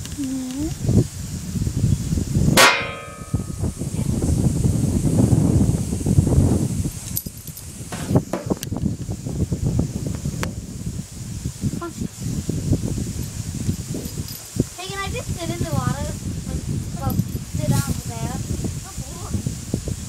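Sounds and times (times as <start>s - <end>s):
metallic clang: 2.6s - 3.8s.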